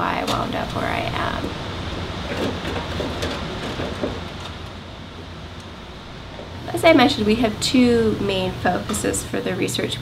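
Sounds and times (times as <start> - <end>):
hum of ventilation and equipment: 0.0 - 10.0.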